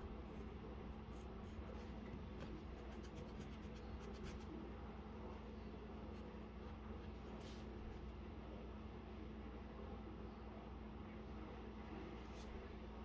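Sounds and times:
faint low hum: 0:00.0 - 0:13.0
pencil scratching on paper: 0:00.3 - 0:04.6.

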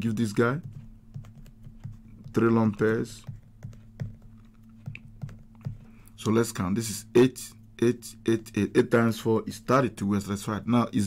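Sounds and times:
low electrical hum: 0:00.0 - 0:11.0
stylus tapping on tablet: 0:00.6 - 0:06.1.

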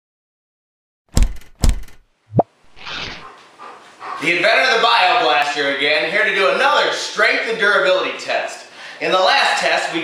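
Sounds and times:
heavy thumps: 0:01.1 - 0:02.5.

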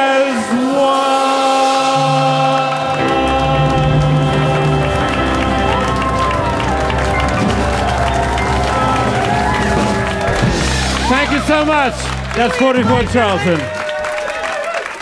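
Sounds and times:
choir and band singing: 0:00.0 - 0:11.0
audience applauding and cheering: 0:00.1 - 0:15.0
man speaking: 0:11.0 - 0:13.7.

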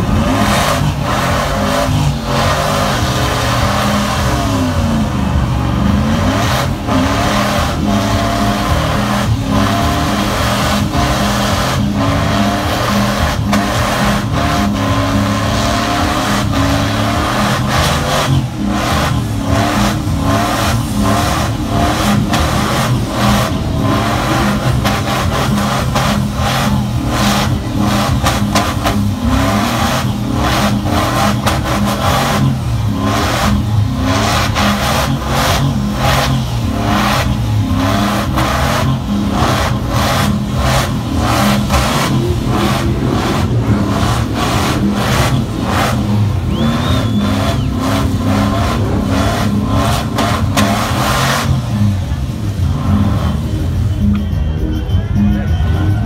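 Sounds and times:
engine at high revs: 0:00.0 - 0:54.8
tyres spinning: 0:00.0 - 0:54.9.

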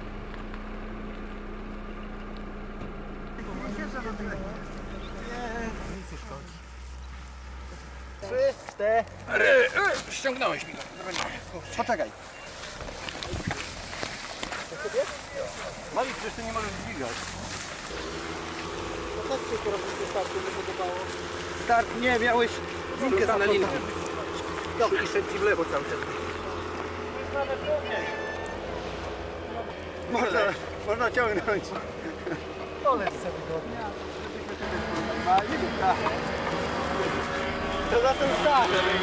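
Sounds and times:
engine hum: 0:00.0 - 0:39.0
voices: 0:00.4 - 0:39.0.

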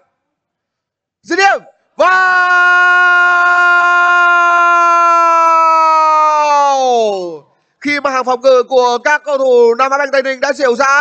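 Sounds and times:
man shouting goal: 0:01.3 - 0:07.4.

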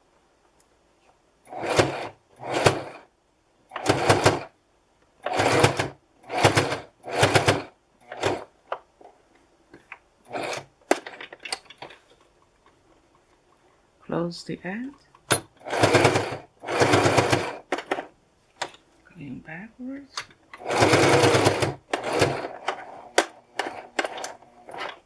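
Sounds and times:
sewing machine stitching: 0:01.5 - 0:03.1, 0:03.7 - 0:04.6, 0:05.2 - 0:08.5, 0:10.2 - 0:11.6, 0:15.3 - 0:18.1, 0:20.5 - 0:25.0
sewing machine clicks: 0:03.7 - 0:04.5, 0:20.2 - 0:25.0.

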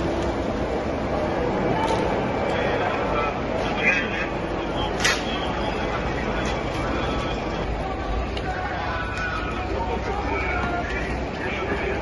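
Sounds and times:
indistinct voices: 0:00.0 - 0:12.0
steady low rumble: 0:00.0 - 0:12.0.

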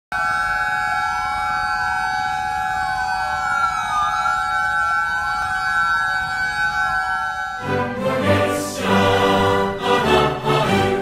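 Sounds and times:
sirens wailing: 0:00.1 - 0:10.9.

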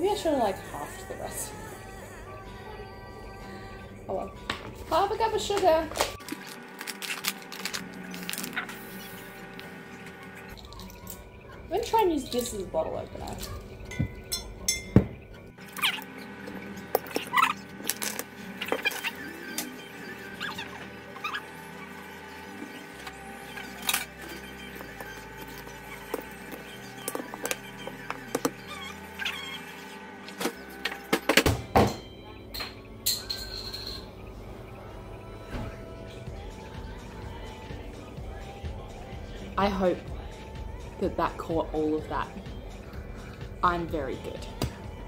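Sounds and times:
background music: 0:00.0 - 0:45.0.

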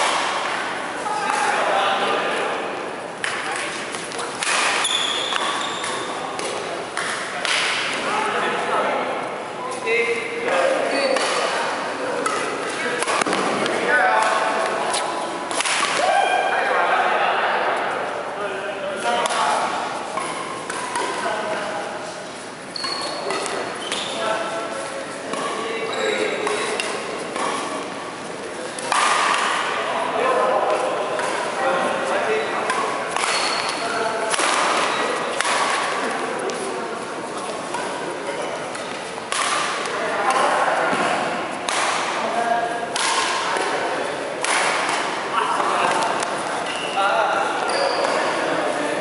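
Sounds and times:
rackets hitting shuttlecock: 0:00.0 - 0:01.5, 0:03.2 - 0:08.0, 0:10.5 - 0:16.2, 0:19.0 - 0:21.7, 0:22.8 - 0:24.1, 0:26.4 - 0:27.9, 0:28.6 - 0:36.7, 0:37.4 - 0:46.9.

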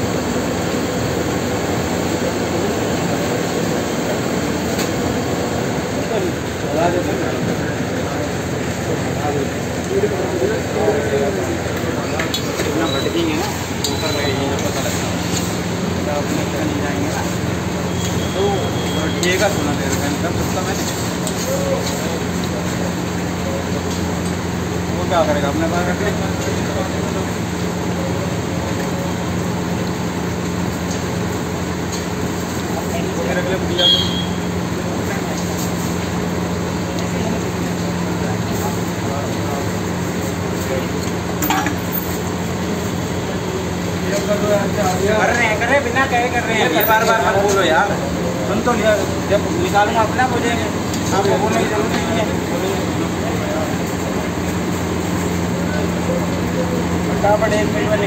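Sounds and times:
indistinct voices: 0:00.0 - 0:30.0
frying hiss on a griddle: 0:00.1 - 0:58.0.

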